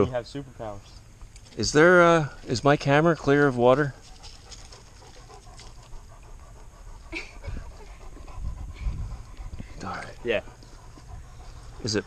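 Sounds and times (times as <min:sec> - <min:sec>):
dog panting: 0:03.2 - 0:12.0.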